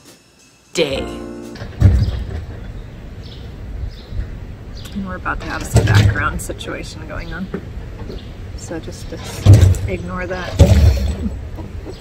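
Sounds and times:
short low thump: 1.6 - 2.6.

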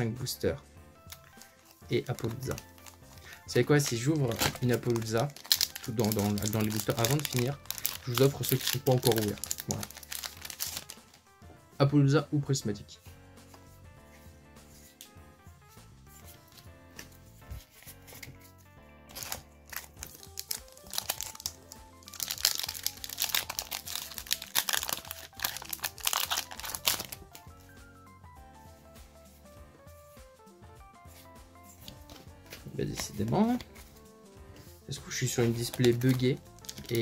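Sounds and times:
soft background music: 0.0 - 37.0
foil wrapper crinkling and tearing: 1.1 - 11.2, 19.0 - 27.4, 35.1 - 37.0.

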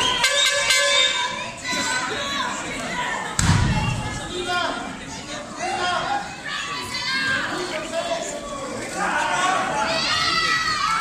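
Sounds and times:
crowd shouting: 0.0 - 11.0
sharp slaps: 3.4 - 4.2.

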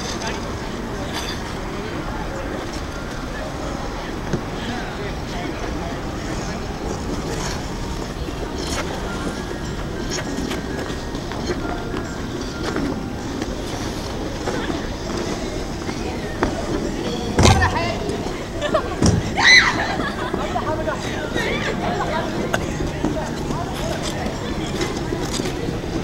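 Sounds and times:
indistinct voices of skaters: 0.0 - 26.0.

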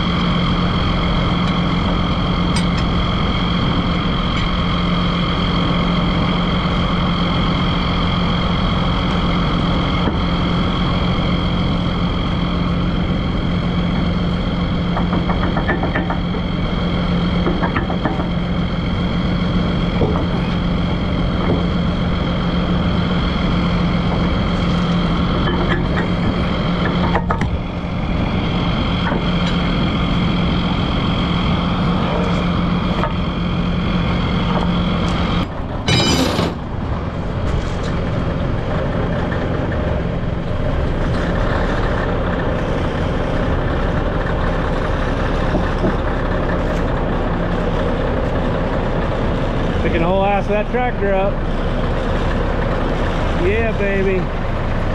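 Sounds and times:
heavy diesel engine idling: 0.0 - 54.9.

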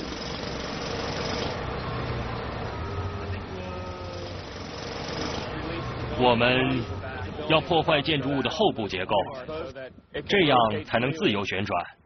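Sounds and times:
loader engine hum: 0.0 - 11.4.

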